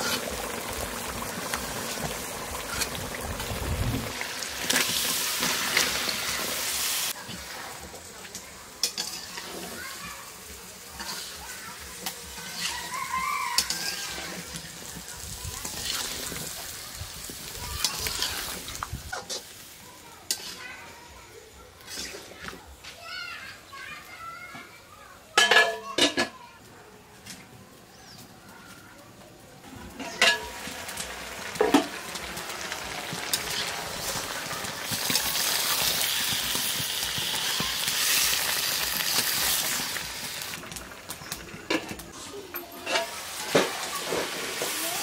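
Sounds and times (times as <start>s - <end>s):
food sizzling in hot oil: 0.0s - 24.4s, 29.6s - 45.0s
metal lid clanking on iron pot: 25.4s - 26.3s, 30.0s - 30.6s.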